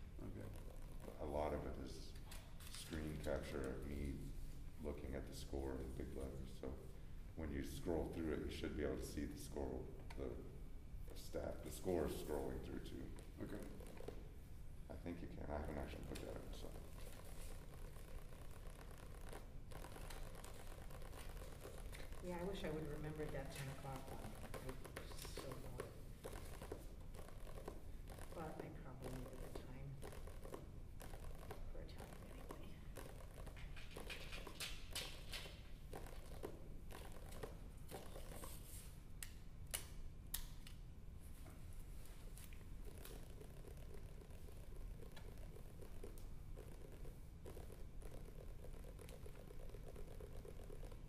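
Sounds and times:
fingers drumming on a book: 17.5 - 35.2, 42.8 - 51.0.

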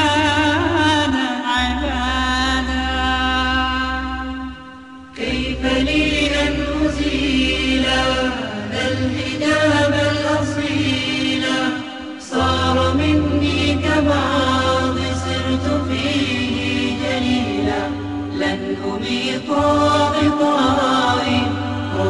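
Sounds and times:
voices singing slow melody: 0.0 - 22.0
low humming drone: 1.6 - 22.0.

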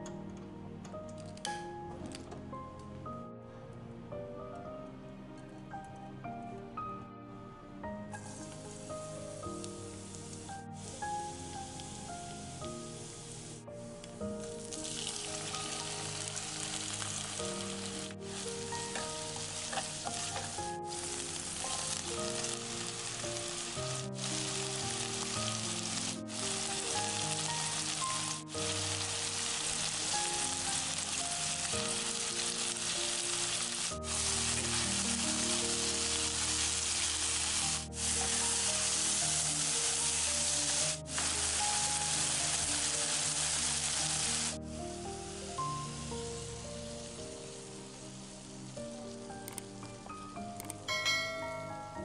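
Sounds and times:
food sizzling in a wok: 8.1 - 49.4.

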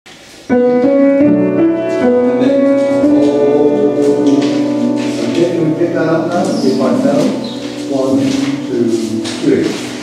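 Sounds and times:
acoustic piano playing: 0.1 - 10.0.

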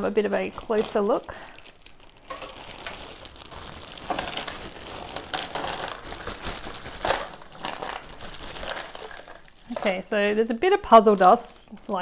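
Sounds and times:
plastic bag crinkling: 0.0 - 12.0
jigsaw pieces spilling into box: 2.3 - 10.0.

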